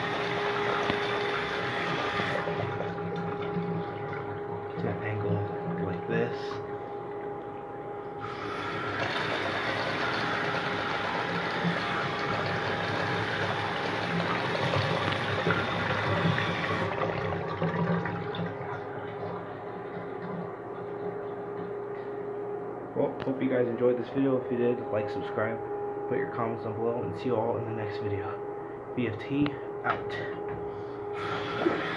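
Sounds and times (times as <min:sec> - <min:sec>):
electric pump hum: 0:00.0 - 0:31.9.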